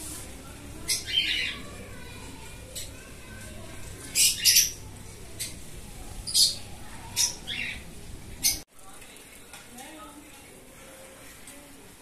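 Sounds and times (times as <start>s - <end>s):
lovebirds chirping: 0.2s - 8.7s.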